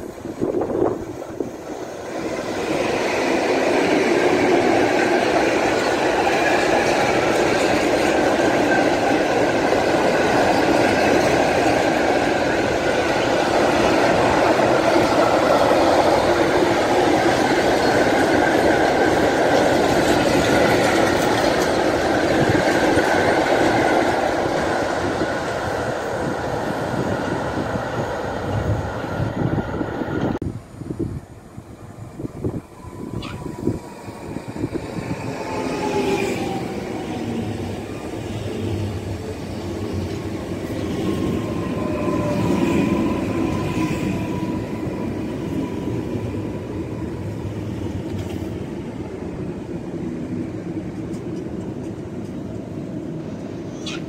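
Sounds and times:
train wheels rumbling on rails: 0.0 - 30.5, 31.8 - 54.0.

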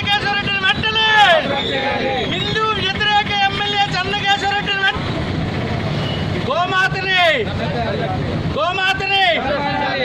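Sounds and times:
protesters shouting slogans: 0.0 - 4.8, 8.6 - 10.0
traffic noise: 0.0 - 10.0.

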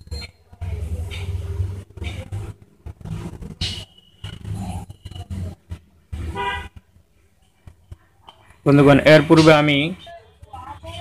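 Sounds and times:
vehicle horn toot: 6.3 - 6.8.

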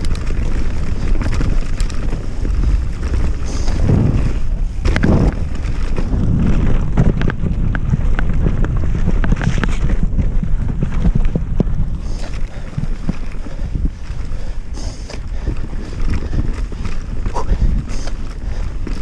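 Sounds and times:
bike rattling: 0.0 - 19.0
wind buffeting microphone: 0.0 - 19.0.

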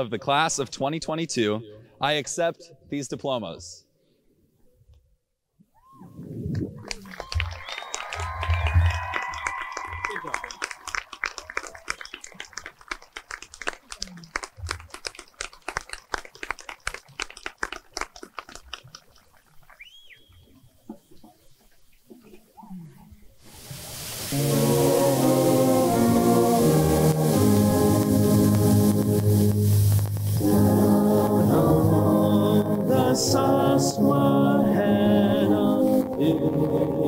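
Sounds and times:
crowd cheering and clapping: 6.7 - 19.9, 24.2 - 33.8, 35.6 - 37.0
shrill whistles: 7.2 - 11.0, 11.6 - 12.4, 19.8 - 20.6.

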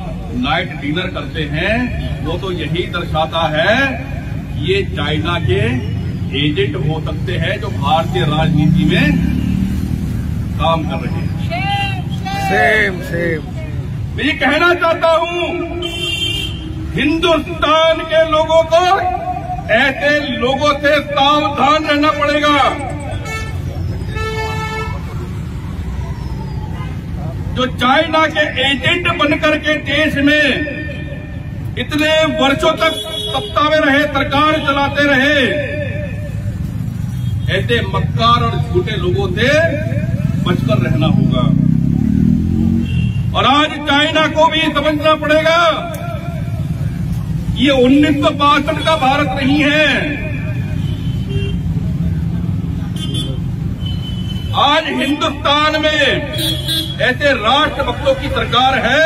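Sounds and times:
low rumble of road traffic: 0.0 - 59.0
vehicle horn: 15.8 - 16.8, 23.2 - 25.1, 32.8 - 33.6, 42.8 - 43.3, 50.7 - 51.7, 52.9 - 54.6, 56.3 - 57.0.

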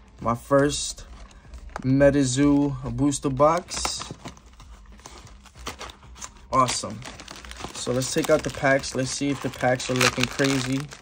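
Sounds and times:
cardboard rustling: 0.4 - 11.0.

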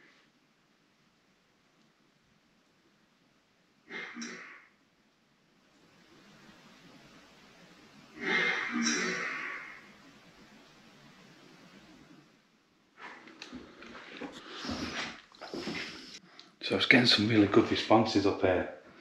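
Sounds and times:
faint steady hiss: 0.0 - 19.0
knocks and rustles of movement: 13.0 - 16.2
shuffling noise: 13.0 - 16.2.

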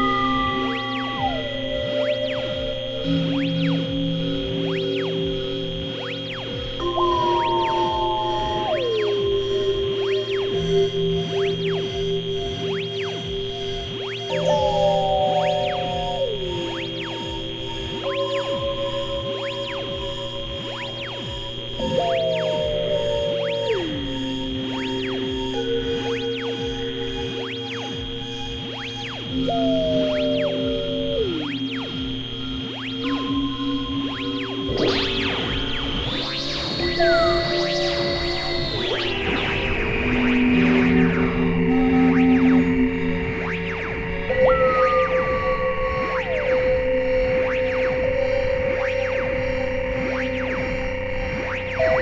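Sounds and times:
note sliding down in pitch: 0.0 - 13.2, 14.0 - 50.6
bright noisy synth swell: 0.0 - 48.0
steady high whine: 0.0 - 52.0
synthesizer drone music: 0.0 - 52.0.

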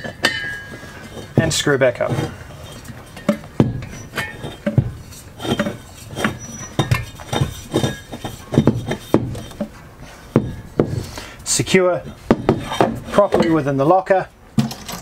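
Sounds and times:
metallic clinks and knocks: 0.0 - 11.0, 14.6 - 15.0.

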